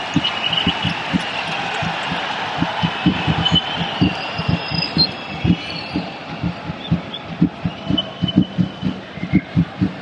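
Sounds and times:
stadium crowd noise: 0.0s - 10.0s
bass drum thumps: 0.1s - 1.2s, 1.8s - 10.0s.

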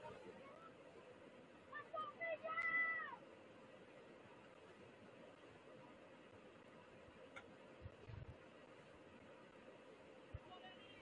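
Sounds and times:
distant person shouting: 1.7s - 3.2s.

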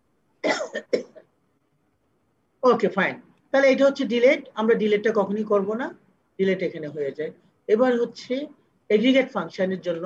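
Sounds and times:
person coughing: 0.4s - 1.3s.

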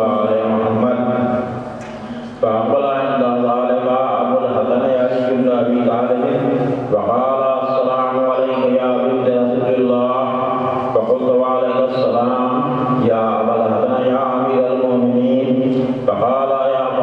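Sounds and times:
man chanting into microphone: 0.0s - 17.0s
short breaths: 1.9s - 2.4s.

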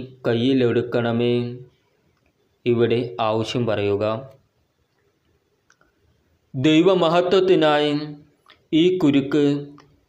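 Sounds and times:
man speaking prayer: 0.0s - 1.7s, 2.6s - 4.4s, 6.5s - 9.9s.

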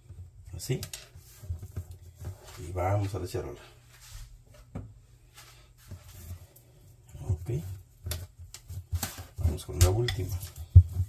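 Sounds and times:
hands handling bread dough: 0.0s - 11.0s.

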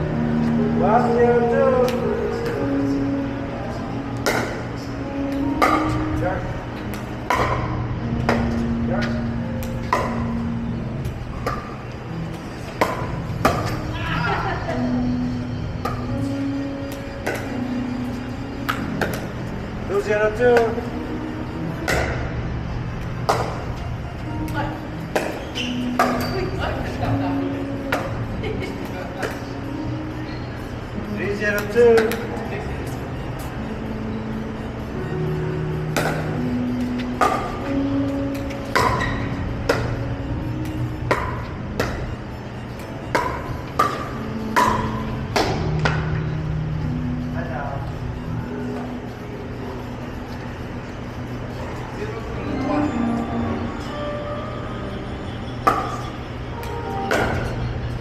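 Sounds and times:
background music low notes: 0.0s - 58.0s.

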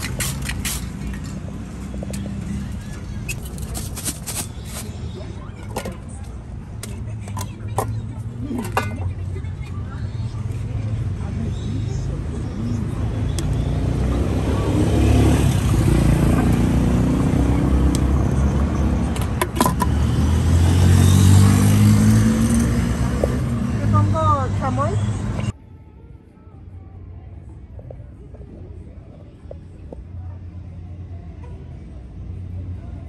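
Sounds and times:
vehicle engine rumbling: 0.0s - 33.0s.

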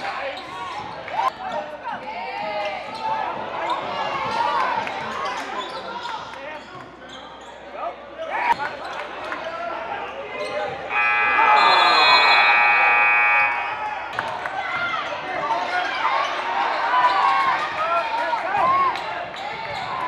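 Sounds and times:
voices echoing in gym: 0.0s - 20.0s
scoreboard buzzer long tone: 10.9s - 14.0s.

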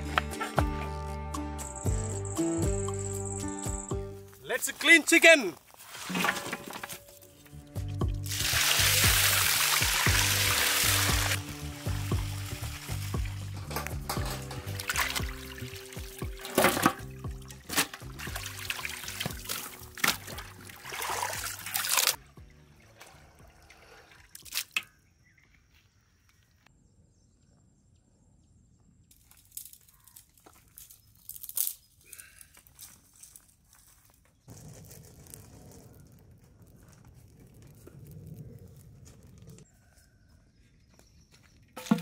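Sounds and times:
background music: 0.0s - 4.7s, 7.3s - 24.0s
water dripping: 7.8s - 25.0s
water pouring into pot: 8.1s - 22.2s
hands sloshing chicken in water: 18.1s - 22.2s.

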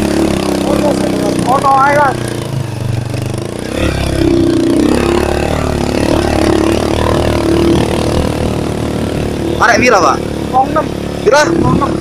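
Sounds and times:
motorcycle engine under load: 0.0s - 12.0s.

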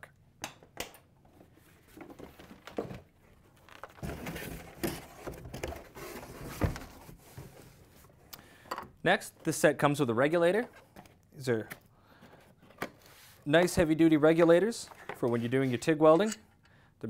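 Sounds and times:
cardboard rustling and scraping: 1.4s - 8.2s.

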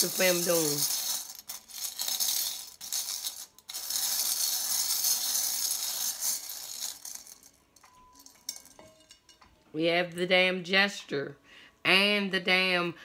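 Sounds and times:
metal charms rattling in a bowl: 0.0s - 8.8s.

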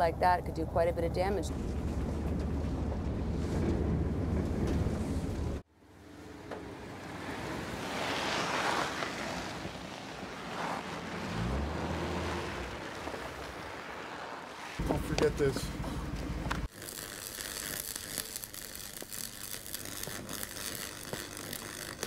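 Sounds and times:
van engine droning: 0.0s - 16.7s
wind rushing outdoors: 1.4s - 16.7s.

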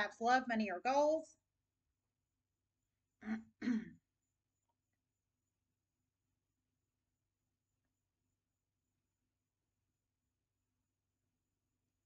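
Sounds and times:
woman clearing her throat: 3.2s - 4.0s.

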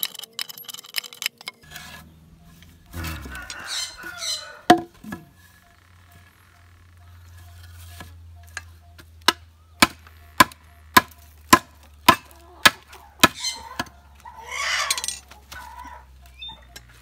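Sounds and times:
rustling: 0.0s - 9.3s
bamboo knocking on ground: 4.7s - 5.3s
machete chopping bamboo: 4.7s - 5.3s, 7.8s - 13.9s.

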